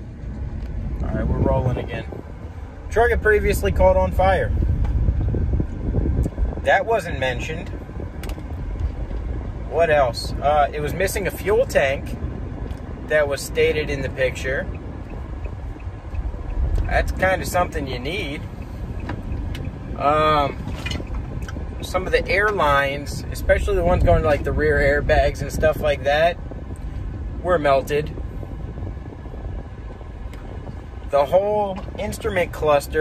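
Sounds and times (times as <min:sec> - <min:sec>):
car road and engine rumble: 0:00.0 - 0:33.0.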